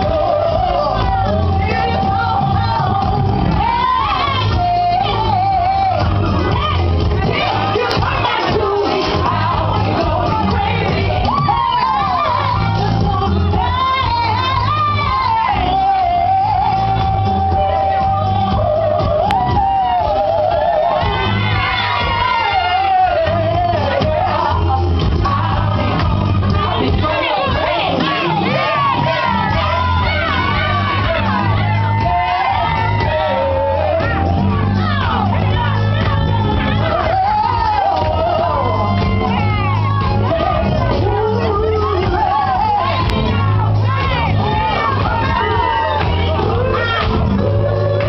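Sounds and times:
backing track with heavy bass: 0.0 - 48.0
woman singing: 0.0 - 48.0.

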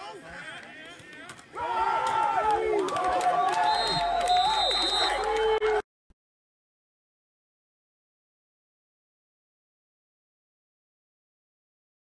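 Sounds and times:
crowd shouting and cheering: 0.0 - 5.8.

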